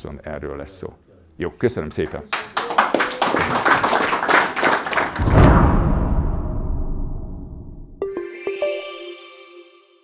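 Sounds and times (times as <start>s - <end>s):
audience applause: 2.3s - 5.3s
deep boom music sting: 5.2s - 8.0s.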